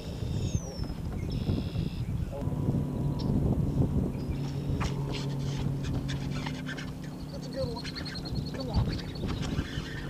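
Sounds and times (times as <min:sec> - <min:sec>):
electric trolling motor humming: 0:00.0 - 0:10.0.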